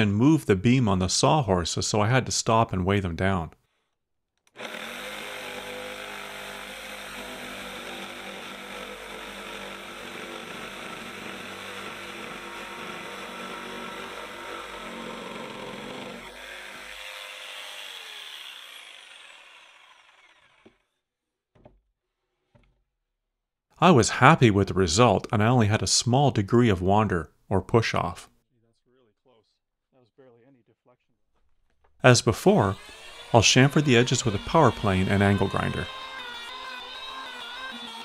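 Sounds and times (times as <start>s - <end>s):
jigsaw cutting timber: 4.6s - 21.0s, 32.5s - 38.0s.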